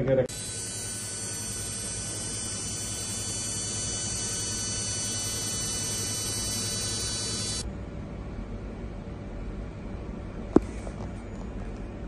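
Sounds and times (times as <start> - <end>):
laser high buzz: 0.3 - 7.7.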